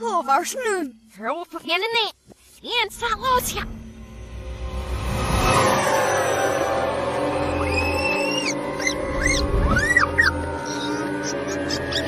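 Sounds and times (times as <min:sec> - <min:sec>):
cartoon background music: 0:05.6 - 0:12.0
high squeaky chirps: 0:07.3 - 0:12.0.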